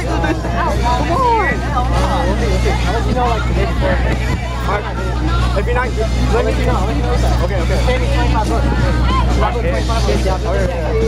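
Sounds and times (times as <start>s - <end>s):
crowd chatter: 0.0s - 11.0s
steady low rumble: 0.0s - 11.0s.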